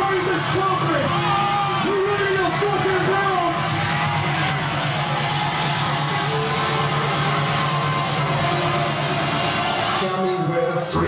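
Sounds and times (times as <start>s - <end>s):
crowd noise: 0.0s - 11.0s
electronic dance music: 0.0s - 11.0s.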